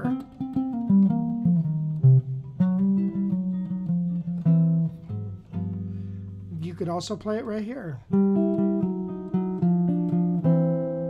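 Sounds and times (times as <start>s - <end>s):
fingerpicked guitar blues lick: 0.0s - 11.0s.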